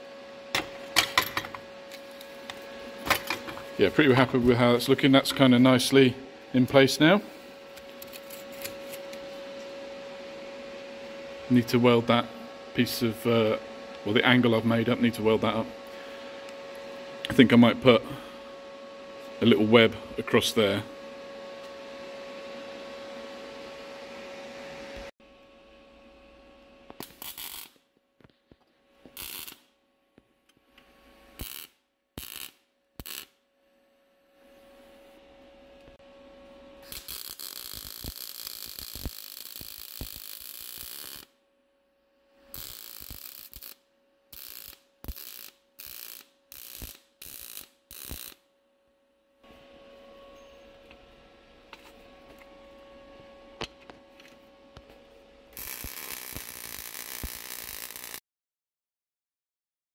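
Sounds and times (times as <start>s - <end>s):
steady hum with faint tone: 0.0s - 57.6s
welder arc crackling: 26.9s - 28.4s, 29.1s - 29.7s, 31.3s - 33.4s, 36.8s - 41.3s, 42.5s - 48.4s, 55.6s - 58.2s.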